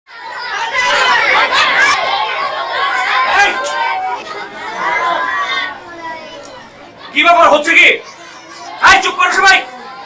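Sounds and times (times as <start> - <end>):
children chattering: 0.1 - 10.0.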